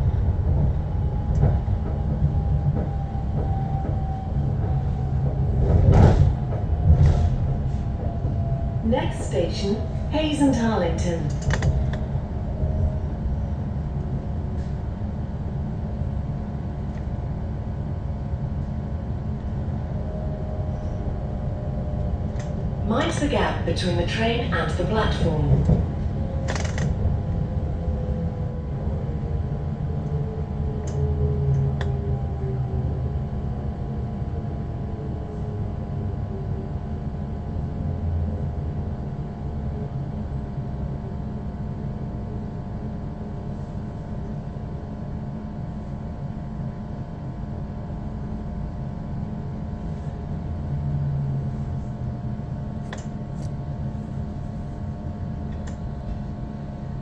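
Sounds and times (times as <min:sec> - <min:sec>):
electric train rumble: 0:00.0 - 0:57.0.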